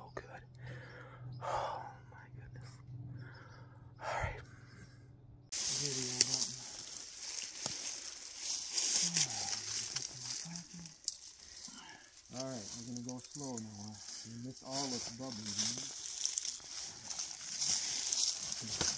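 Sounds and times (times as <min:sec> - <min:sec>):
faint breath or whisper: 0:00.6 - 0:05.0, 0:11.4 - 0:12.3
people pushing through dry brush: 0:05.5 - 0:18.9.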